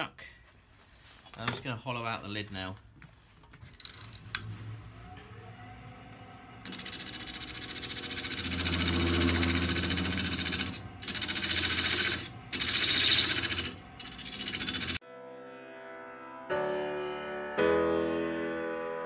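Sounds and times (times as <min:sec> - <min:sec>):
low lathe hum: 0:03.8 - 0:15.0
gouge rasping on wood lathe: 0:06.6 - 0:15.0.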